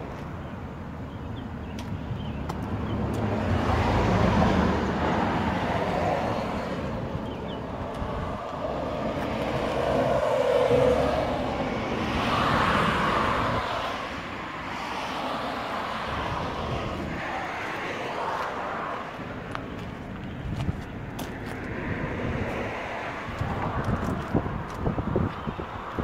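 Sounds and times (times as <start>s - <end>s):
vehicles passing by: 0.0s - 26.0s.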